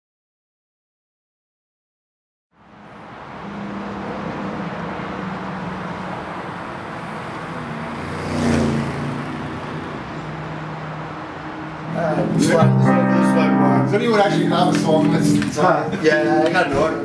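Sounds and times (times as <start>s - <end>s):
street traffic noise: 2.6s - 17.0s
vehicle passing: 2.6s - 17.0s.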